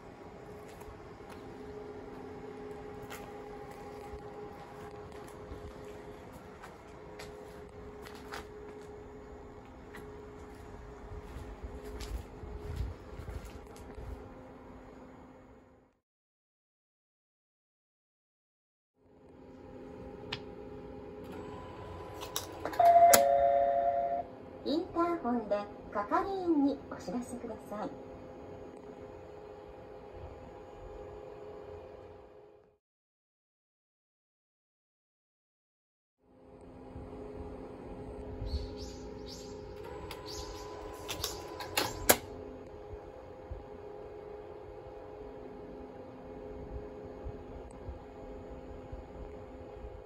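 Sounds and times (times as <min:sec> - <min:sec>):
machine humming faintly: 0:00.0 - 0:15.9, 0:19.0 - 0:32.7, 0:36.3 - 0:50.0
loud two-note alarm tone: 0:22.7 - 0:24.3.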